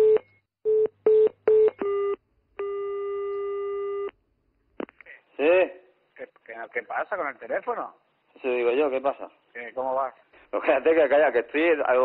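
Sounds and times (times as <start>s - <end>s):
telephone ringing tone: 0.0s - 4.1s.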